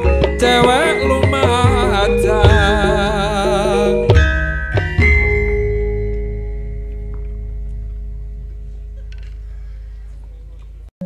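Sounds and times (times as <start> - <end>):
bronze metallophones ringing: 0.0 - 10.9
gamelan ensemble stroke: 0.0 - 10.9
deep gong ringing: 2.4 - 10.1.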